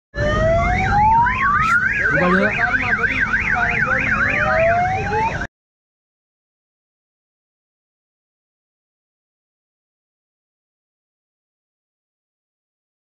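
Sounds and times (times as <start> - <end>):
fast warbling toy siren: 0.2 - 5.5
slow rising siren wails: 0.2 - 5.5.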